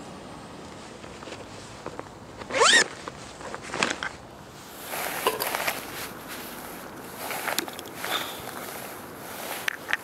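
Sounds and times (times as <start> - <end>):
backpack zipper opening: 2.5 - 2.9.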